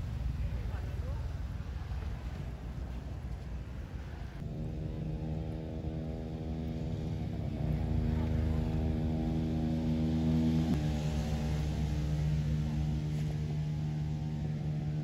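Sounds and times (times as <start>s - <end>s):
engine running steadily: 0.0s - 15.0s.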